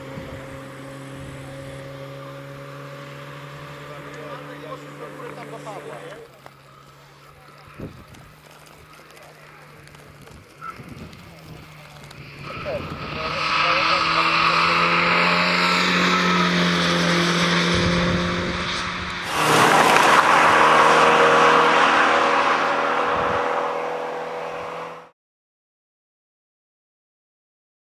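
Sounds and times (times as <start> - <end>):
car accelerating away: 0.0 - 25.1
rally car engine at high revs: 0.0 - 25.1
tyres hissing on gravel: 3.4 - 15.7.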